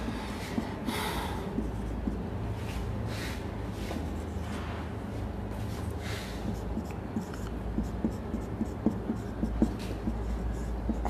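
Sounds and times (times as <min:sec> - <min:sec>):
marker writing on whiteboard: 0:00.0 - 0:04.9, 0:05.5 - 0:11.0
low room hum: 0:00.0 - 0:11.0.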